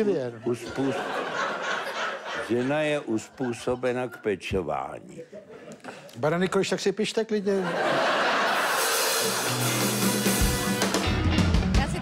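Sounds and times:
drum kit: 8.4s - 12.0s.

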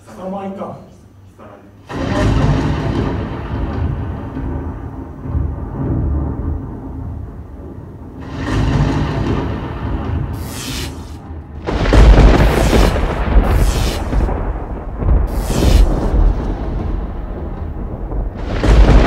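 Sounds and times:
deep ominous rumbling: 1.9s - 10.4s, 11.2s - 19.0s
rising hiss: 10.4s - 11.3s, 12.4s - 14.4s, 15.2s - 16.4s.

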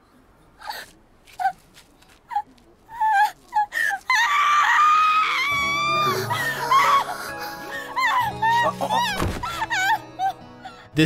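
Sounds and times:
woman screaming: 4.1s - 10.0s
woman gasping and whimpering: 6.0s - 10.9s.

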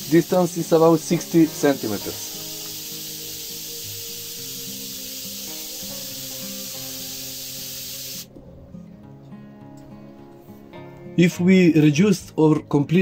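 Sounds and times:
hiss of corona discharge: 0.0s - 8.3s
background music: 0.0s - 13.0s.

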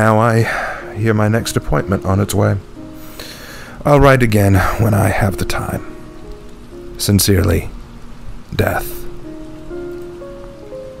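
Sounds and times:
rain-like hiss: 0.0s - 11.0s
soft music with held notes: 0.0s - 11.0s.

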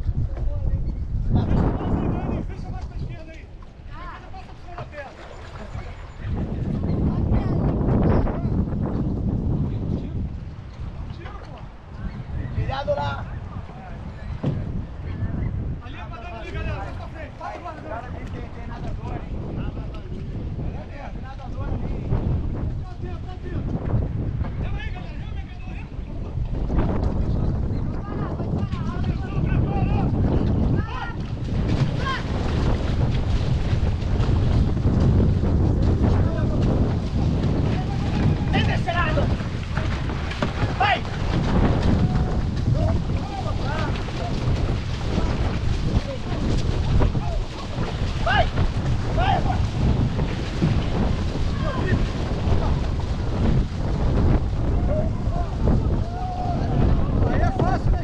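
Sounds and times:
wind rumbling on microphone: 0.0s - 58.0s
paddles splashing water: 1.1s - 58.0s.

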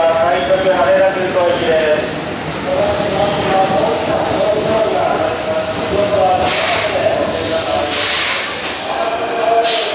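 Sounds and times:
train pulling in: 0.0s - 9.9s
high brake squeal: 3.5s - 6.8s.

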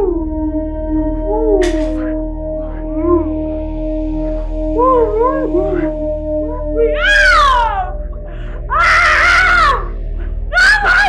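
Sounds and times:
film score drone: 0.0s - 11.0s
woman crying and screaming: 5.0s - 11.0s.

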